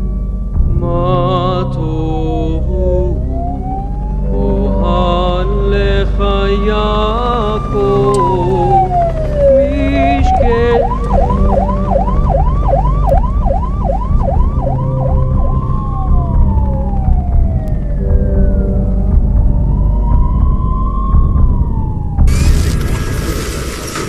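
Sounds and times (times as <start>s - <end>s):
low rumble: 0.0s - 24.0s
emergency vehicle sirens: 3.0s - 24.0s.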